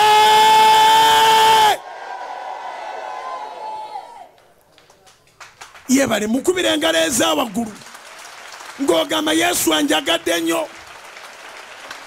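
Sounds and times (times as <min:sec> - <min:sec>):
man shouting into microphone: 0:00.0 - 0:01.8, 0:05.9 - 0:07.8, 0:08.8 - 0:10.8.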